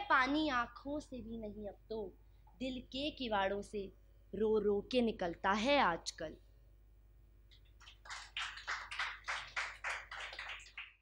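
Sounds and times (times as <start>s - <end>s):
hands clapping: 7.5s - 11.0s.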